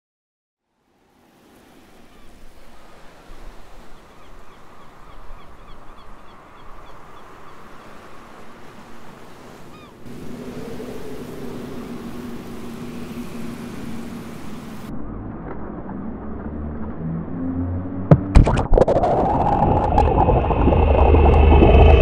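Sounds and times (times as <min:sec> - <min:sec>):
sea waves washing: 0:00.9 - 0:14.9, 0:18.2 - 0:22.0
faint bird calls: 0:03.8 - 0:08.7, 0:09.5 - 0:14.8
steady low drone: 0:10.1 - 0:22.0.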